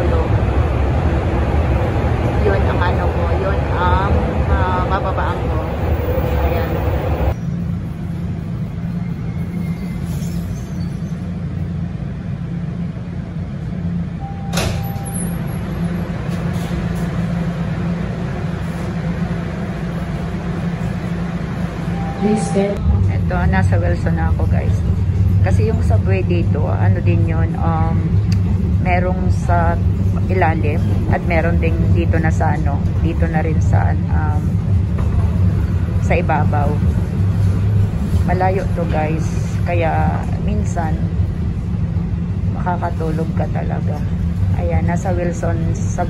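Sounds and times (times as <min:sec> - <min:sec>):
low hum: 0:00.0 - 0:46.0
subway train rumble and rattle: 0:00.0 - 0:46.0.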